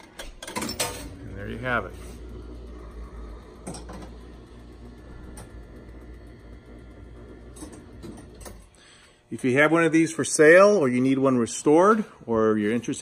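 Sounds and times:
low hum of gearing: 0.0s - 13.0s.

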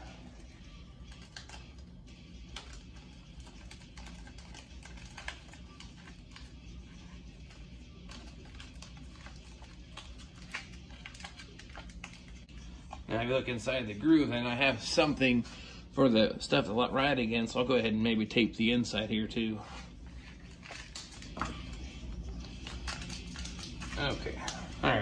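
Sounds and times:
low steady hum: 0.0s - 25.0s
masking tape tearing: 2.5s - 6.5s, 7.9s - 12.4s.

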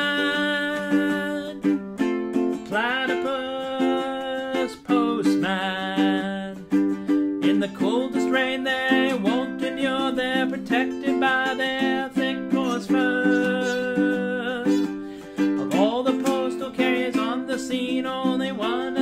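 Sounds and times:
man singing: 0.0s - 19.0s
strummed ukulele chords: 0.0s - 19.0s.

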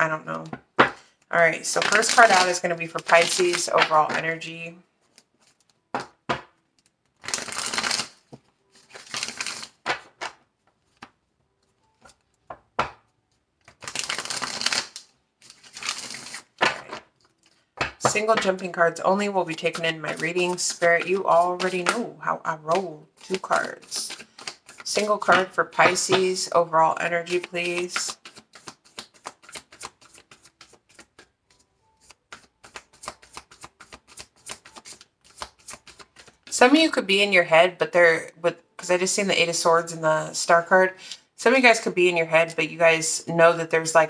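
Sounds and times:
cards being riffle-shuffled: 1.7s - 4.2s, 5.0s - 6.1s, 6.7s - 22.0s, 22.7s - 26.4s, 27.0s - 36.6s.

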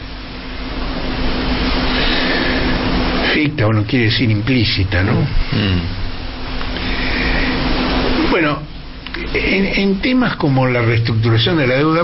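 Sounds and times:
faint low hum: 0.0s - 12.0s
steady rushing noise: 0.0s - 12.0s
people talking: 3.2s - 6.0s, 8.2s - 12.0s.

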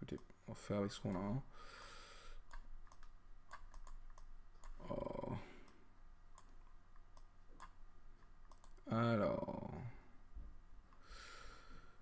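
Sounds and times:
computer mouse clicks: 1.0s - 4.8s, 5.6s - 7.8s, 8.5s - 8.9s.

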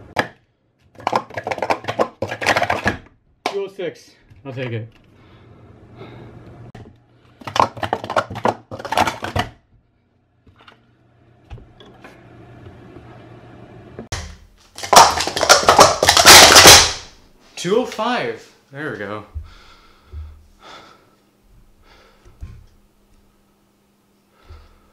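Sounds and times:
plastic cups clattering: 0.1s - 3.6s, 7.3s - 9.6s, 14.2s - 17.0s.

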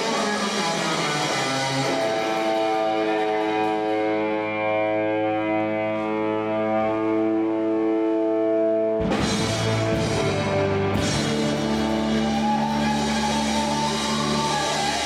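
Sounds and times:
electric guitar solo: 0.0s - 15.0s.

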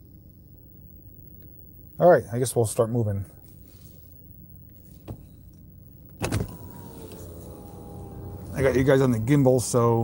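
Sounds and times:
faint electric whine: 0.0s - 10.0s
car cabin rumble: 6.2s - 10.0s.

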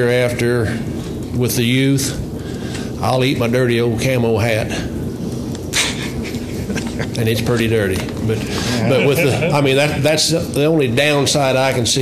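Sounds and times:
people laughing: 5.8s - 7.4s, 8.6s - 10.2s.

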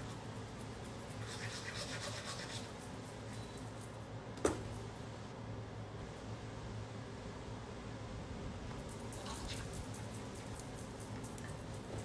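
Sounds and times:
toothbrush scrubbing teeth: 1.1s - 2.8s.

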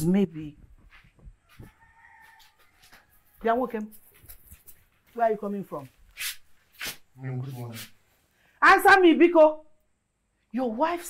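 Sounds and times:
rooster crowing faintly: 1.4s - 3.6s.

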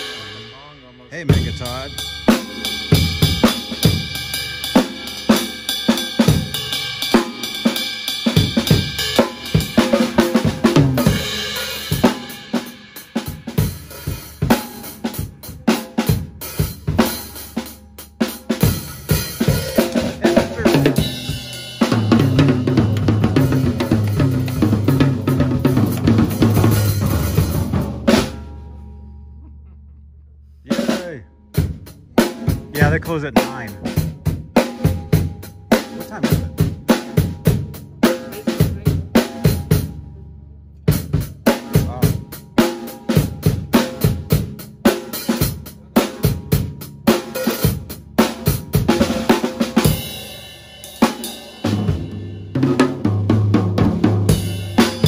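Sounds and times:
drum kit solo: 0.0s - 28.9s, 30.7s - 40.1s, 40.9s - 55.0s
fast drum roll on toms: 1.2s - 17.6s, 18.3s - 28.4s, 30.7s - 40.0s, 41.0s - 55.0s.

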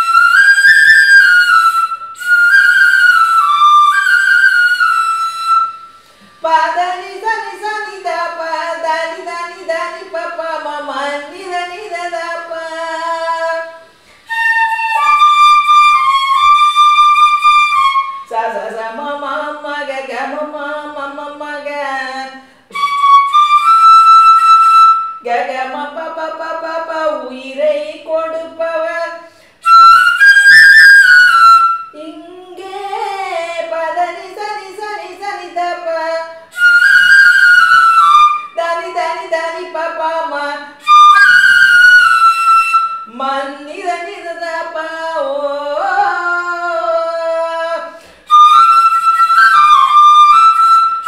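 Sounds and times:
bamboo flute melody: 0.0s - 6.0s, 14.3s - 18.4s, 22.7s - 25.3s, 29.6s - 32.1s, 36.4s - 38.6s, 40.8s - 43.3s, 48.3s - 51.0s
woman's voice: 6.4s - 13.8s, 32.0s - 36.4s, 38.6s - 40.7s
woman singing: 6.4s - 13.9s, 18.2s - 23.7s, 25.2s - 29.3s, 31.9s - 36.9s, 38.4s - 42.1s, 43.0s - 48.1s.

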